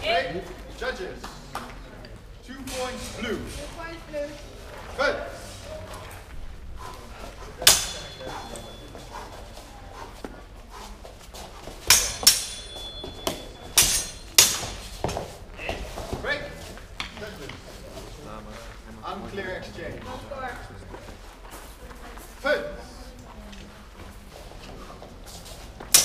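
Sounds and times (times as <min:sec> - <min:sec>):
fencing swords clashing: 0:07.4 - 0:17.7, 0:25.4 - 0:26.0.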